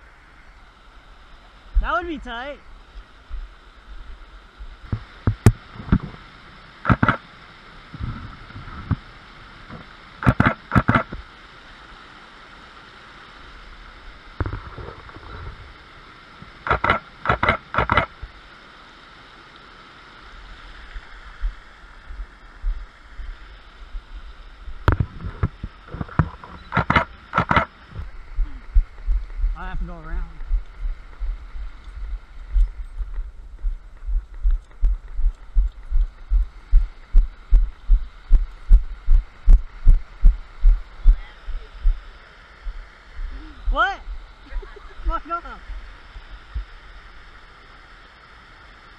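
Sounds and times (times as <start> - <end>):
waterfall rushing into creek: 0.0 - 48.9
camera shutter clicks: 6.9 - 7.2, 16.7 - 18.1.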